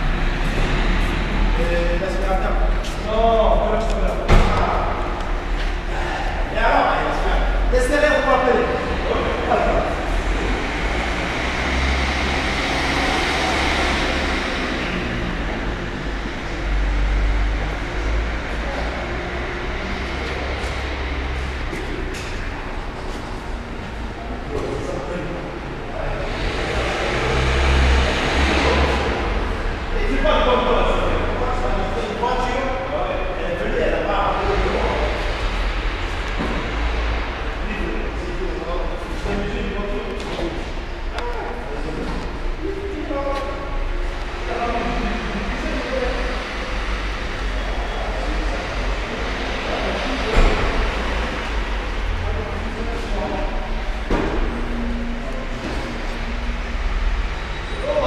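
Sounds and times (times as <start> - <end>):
car engine low rumble: 0.0 - 58.0.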